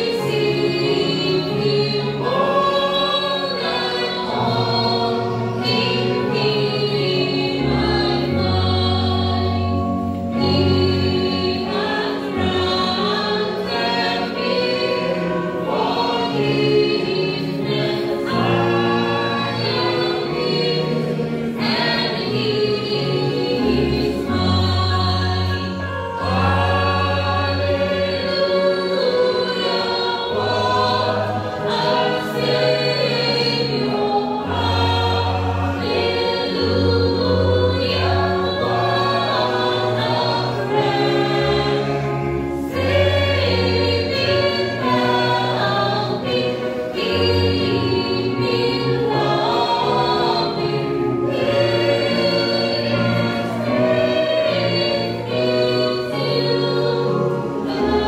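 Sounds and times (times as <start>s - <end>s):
congregation singing a hymn: 0.0s - 58.0s.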